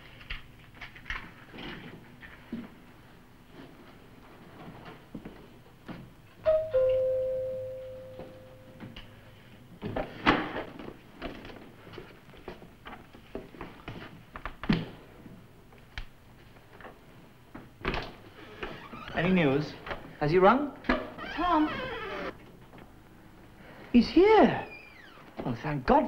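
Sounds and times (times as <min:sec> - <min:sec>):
two-note door chime: 0:06.5 - 0:08.8.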